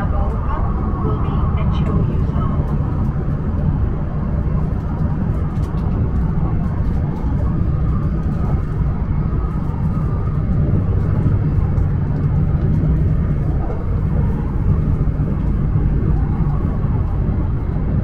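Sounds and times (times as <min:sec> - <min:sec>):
train cabin deep rumble: 0:00.0 - 0:18.0.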